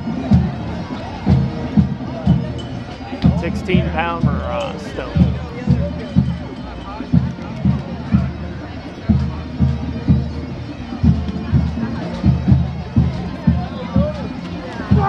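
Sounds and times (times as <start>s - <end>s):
bagpipes: 0.0s - 15.0s.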